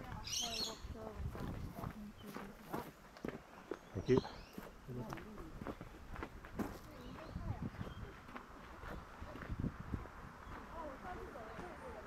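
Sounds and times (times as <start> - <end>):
people's voices: 0.0 - 2.9, 3.9 - 5.8, 6.6 - 12.0
footsteps on dirt and leaves: 0.0 - 12.0.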